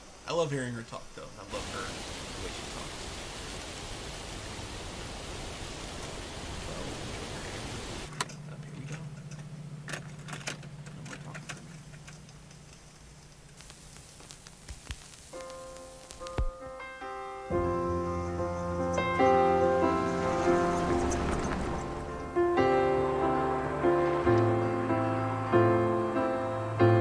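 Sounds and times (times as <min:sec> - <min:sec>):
rushing outdoor hiss: 0:00.0 - 0:08.2, 0:12.8 - 0:27.0
cassette tape clicks and clacks: 0:13.3 - 0:16.6
solo piano: 0:15.4 - 0:27.0.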